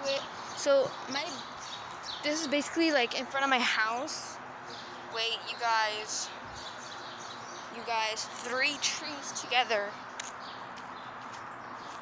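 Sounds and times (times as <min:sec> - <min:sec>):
sharp click: 0:10.2 - 0:10.4.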